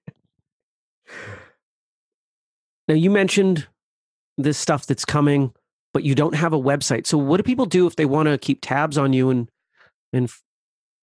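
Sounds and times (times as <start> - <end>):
person sighing: 1.1 - 1.6.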